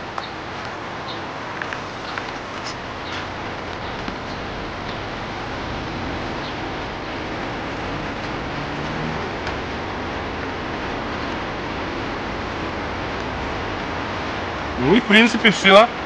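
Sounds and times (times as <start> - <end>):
steady hiss: 0.0 - 16.0.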